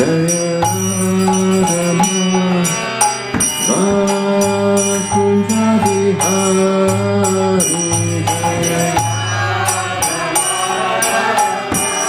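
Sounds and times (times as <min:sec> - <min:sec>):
man chanting: 0:00.0 - 0:03.0, 0:03.7 - 0:09.3
hand cymbals striking a beat: 0:00.0 - 0:12.0
harmonium: 0:00.0 - 0:12.0.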